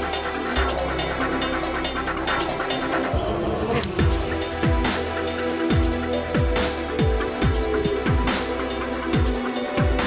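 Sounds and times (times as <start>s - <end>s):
drone propellers buzzing: 0.0s - 6.2s
electronic music: 0.0s - 10.0s.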